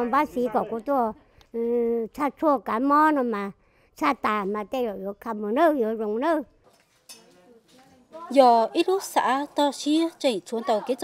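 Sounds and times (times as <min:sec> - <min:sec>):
elderly woman speaking: 0:00.0 - 0:02.1, 0:07.5 - 0:11.0
faint background noise: 0:00.0 - 0:11.0.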